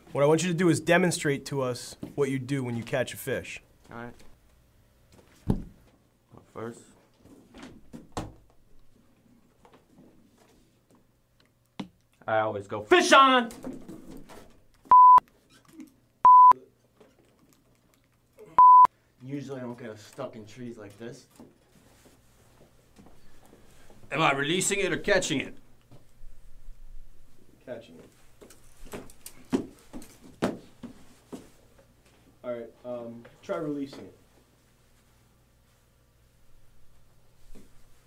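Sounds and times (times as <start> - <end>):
censor bleeps: 14.9 - 15.2, 16.3 - 16.6, 18.6 - 18.9.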